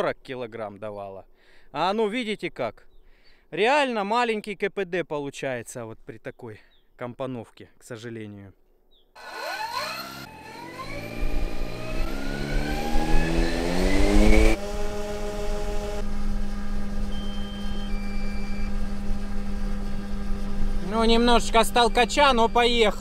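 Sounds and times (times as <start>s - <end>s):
electric motors and propellers whining: 9.2s - 23.0s.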